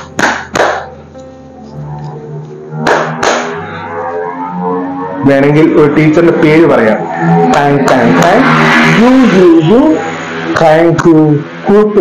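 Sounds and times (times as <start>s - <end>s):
hand claps: 0.0s - 0.9s, 2.8s - 3.5s
background instrumental music: 0.0s - 12.0s.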